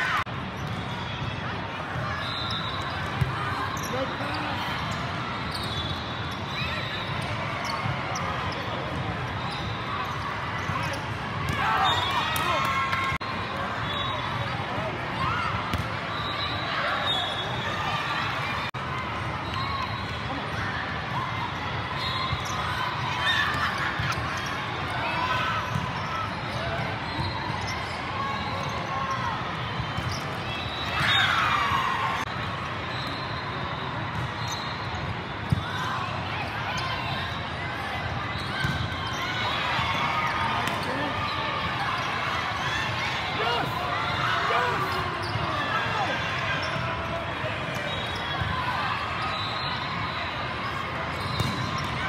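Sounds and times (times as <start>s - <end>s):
many overlapping voices: 34.9s - 52.0s
volleyballs hit and bouncing: 51.0s - 52.0s.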